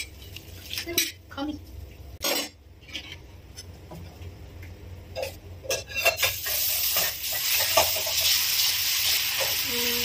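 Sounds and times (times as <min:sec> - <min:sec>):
batter sizzling on hot griddle: 0:06.0 - 0:10.0.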